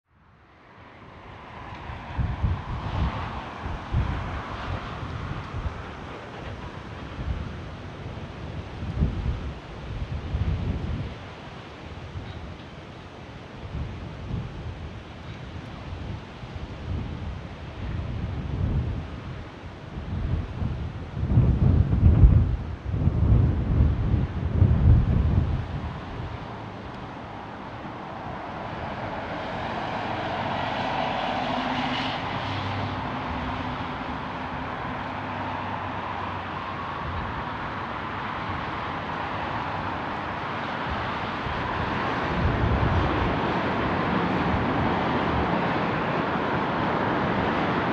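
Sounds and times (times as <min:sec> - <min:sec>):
airliner rolling on runway: 0:00.2 - 0:47.9
jet airliner engines: 0:00.2 - 0:47.9
wind buffeting microphone: 0:01.0 - 0:47.9.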